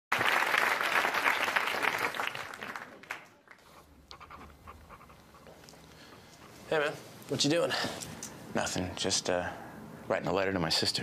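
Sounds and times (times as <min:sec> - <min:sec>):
audience applauding: 0:00.1 - 0:03.7.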